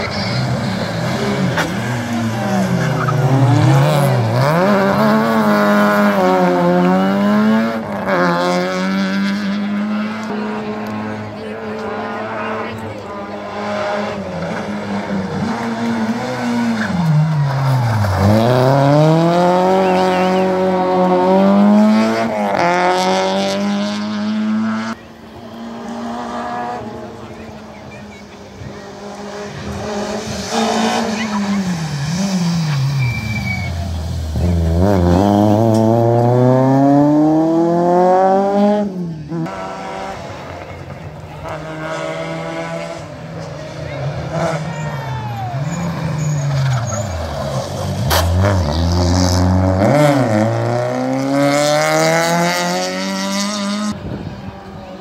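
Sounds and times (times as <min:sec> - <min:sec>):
rally car engine revving: 0:00.0 - 0:54.8.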